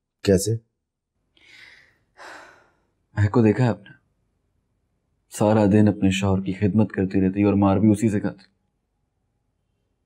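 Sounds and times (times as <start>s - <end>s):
soft breaths: 1.3s - 3.0s.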